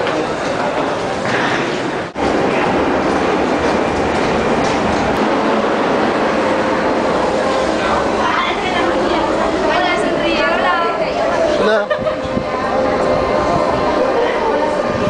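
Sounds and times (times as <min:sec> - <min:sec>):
metro train noise: 0:00.0 - 0:15.0
people's voices: 0:00.0 - 0:15.0.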